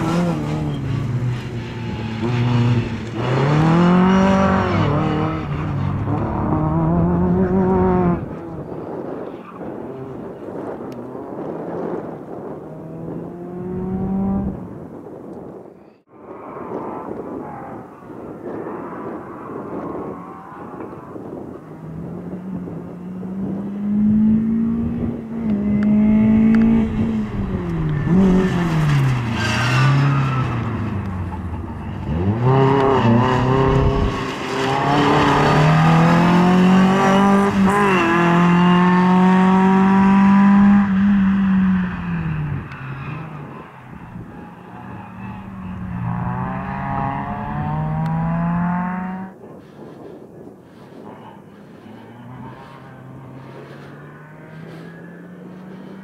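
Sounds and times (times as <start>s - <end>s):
rally car engine revving: 0.0s - 8.6s, 16.9s - 49.3s.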